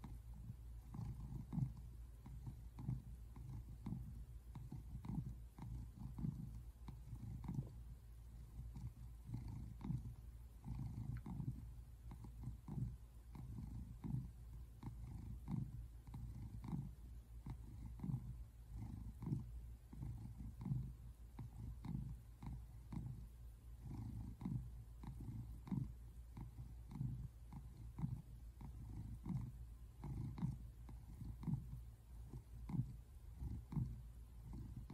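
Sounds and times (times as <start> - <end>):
cat purring: 0.0 - 34.9.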